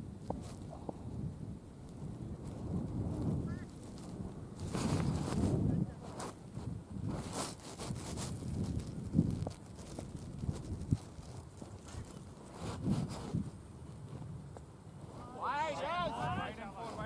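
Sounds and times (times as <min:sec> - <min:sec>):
wind gusting on microphone: 0:00.0 - 0:17.0.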